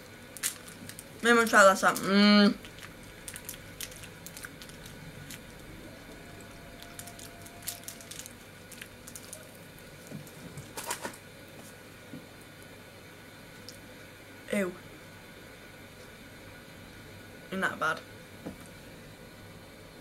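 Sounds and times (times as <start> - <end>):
wrapper crinkling: 0.3 - 11.2.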